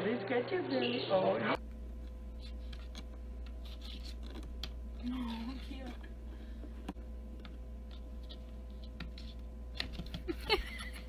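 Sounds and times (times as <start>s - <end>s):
steady low hum: 1.5s - 11.0s.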